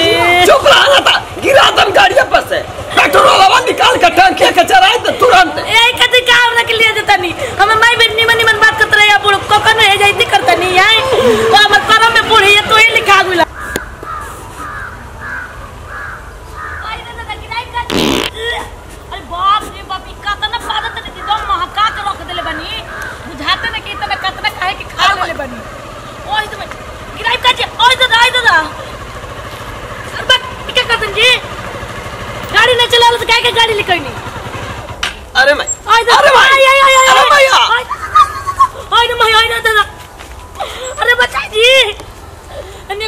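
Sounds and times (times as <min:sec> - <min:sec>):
motorcycle engine running: 0:00.0 - 0:16.8, 0:18.9 - 0:36.0
fart: 0:17.9 - 0:18.4.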